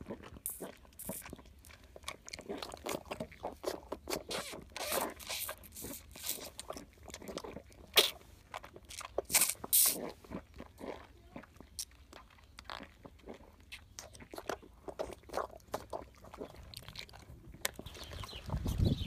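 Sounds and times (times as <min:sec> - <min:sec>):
foal suckling: 0:00.1 - 0:12.0.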